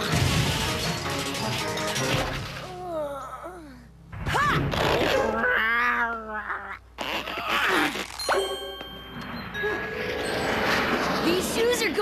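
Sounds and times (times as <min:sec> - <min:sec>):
ringing tones: 0:08.2 - 0:11.6.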